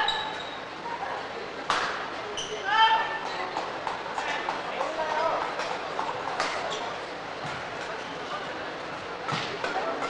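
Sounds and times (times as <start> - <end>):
shoe squeaking on court floor: 0.0 - 0.8, 2.3 - 3.6, 6.4 - 9.5.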